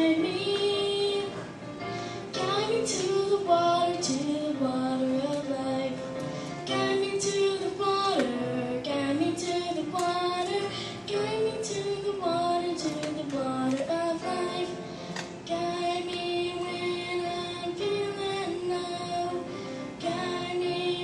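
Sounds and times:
girl singing into a microphone: 0.0s - 21.0s
musical accompaniment: 0.0s - 21.0s.

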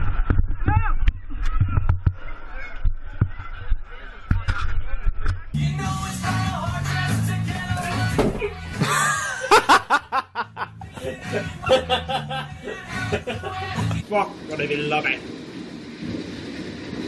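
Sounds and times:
music: 5.5s - 14.0s.

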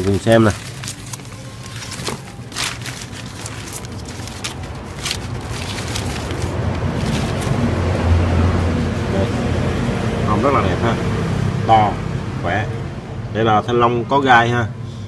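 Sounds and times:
newspaper rustling: 0.0s - 8.0s
low engine hum: 0.6s - 13.4s.

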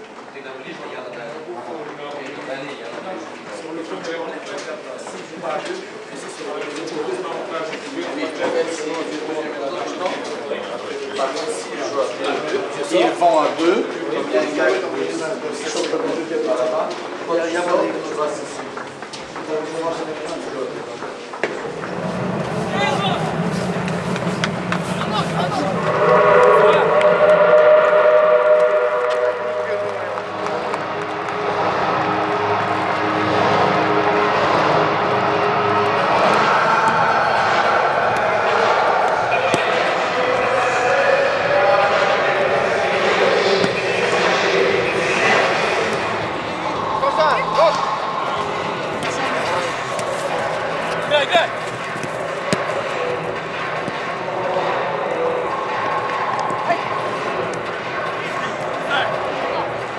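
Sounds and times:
voices and shouts echoing: 0.4s - 59.9s.

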